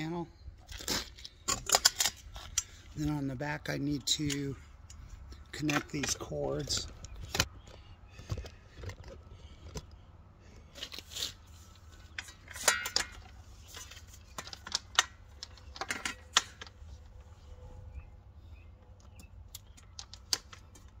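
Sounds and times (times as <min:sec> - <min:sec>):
plastic connectors clicking and rattling: 0:12.1 - 0:16.8, 0:19.0 - 0:21.0.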